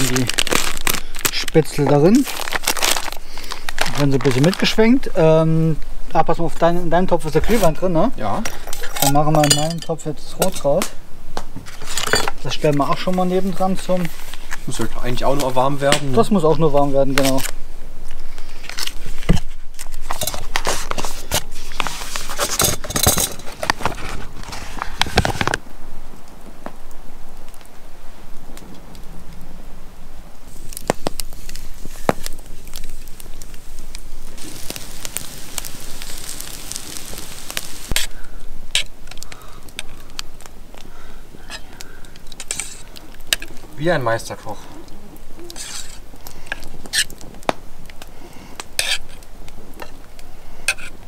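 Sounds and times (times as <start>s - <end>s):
plastic packet crinkling and tearing: 0.0s - 5.0s, 30.5s - 38.1s
campfire crackling and popping: 0.0s - 51.0s.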